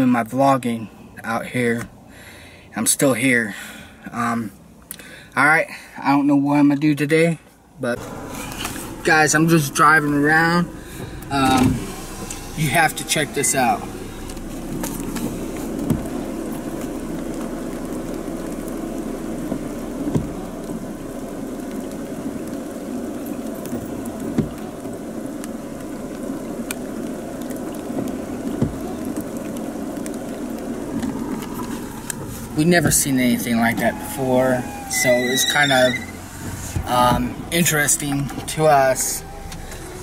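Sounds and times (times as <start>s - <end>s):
road and rain noise in car: 0.0s - 40.0s
short thump: 15.8s - 16.1s.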